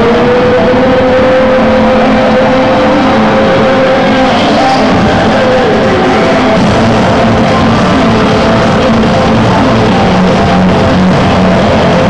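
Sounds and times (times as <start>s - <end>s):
long held synth note: 0.0s - 12.0s
loud electronic club music: 0.0s - 12.0s.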